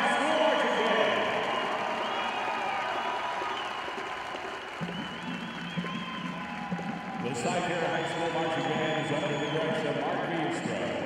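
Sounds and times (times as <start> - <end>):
crowd applauding and cheering: 0.0 - 11.0.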